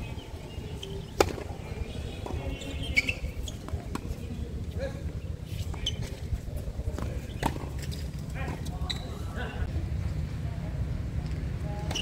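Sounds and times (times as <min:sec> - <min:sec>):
tennis ball strikes: 0:01.2 - 0:01.5, 0:06.9 - 0:07.8.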